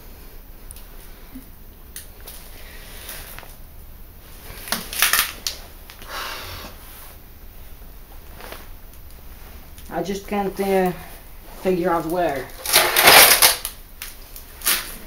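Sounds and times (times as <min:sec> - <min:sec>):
debris scraping: 0:11.6 - 0:13.7
broken glass crunching on hard floor: 0:12.6 - 0:13.7.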